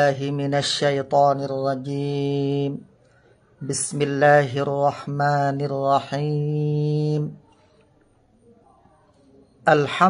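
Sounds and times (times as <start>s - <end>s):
man chanting: 0.0s - 2.9s, 3.6s - 7.7s, 9.6s - 10.0s.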